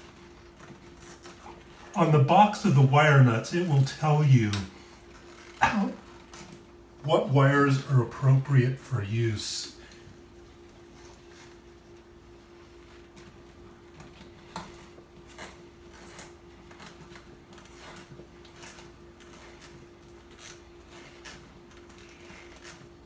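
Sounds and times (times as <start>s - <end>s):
faint steady hum: 0.0s - 23.0s.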